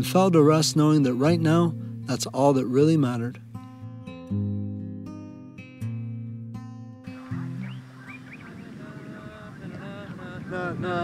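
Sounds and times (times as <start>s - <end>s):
acoustic guitar music: 0.0s - 11.0s
outdoor ambience: 7.1s - 10.8s.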